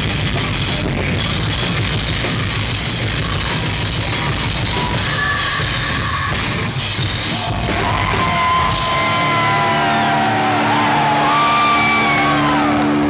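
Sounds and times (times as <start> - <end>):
live rock band playing: 0.0 - 13.0.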